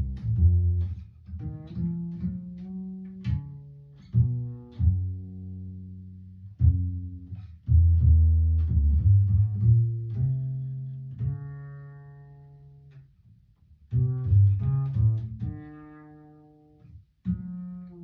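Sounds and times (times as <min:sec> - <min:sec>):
double bass plucked: 0:00.0 - 0:18.0.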